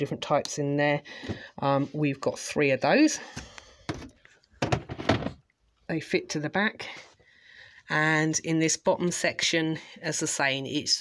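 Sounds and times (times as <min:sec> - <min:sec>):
plastic tub knocking and scraping: 0:03.8 - 0:05.4.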